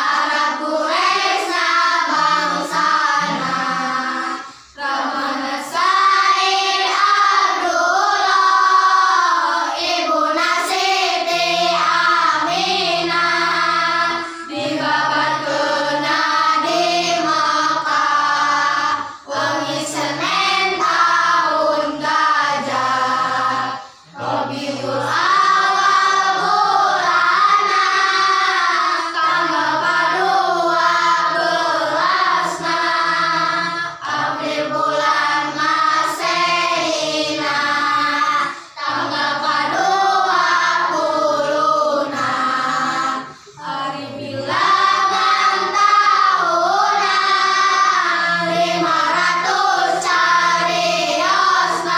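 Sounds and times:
children singing without instruments: 0.0s - 51.9s.

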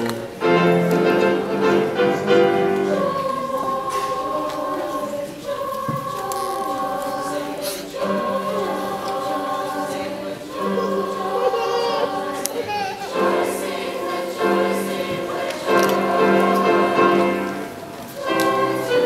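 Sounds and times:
youth choir singing: 0.0s - 19.0s.

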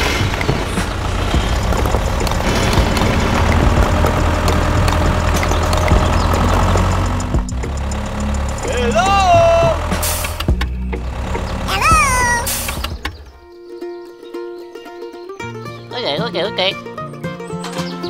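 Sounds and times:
tractor engine running: 0.0s - 13.4s
voice-like cries: 11.7s - 12.6s.

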